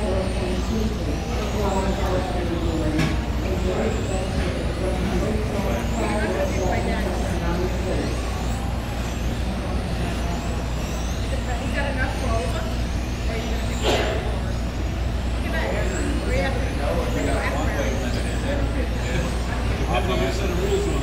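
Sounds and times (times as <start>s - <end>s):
background chatter: 0.0s - 21.0s
rc car motors whining: 0.0s - 21.0s
steady low hum: 0.0s - 21.0s.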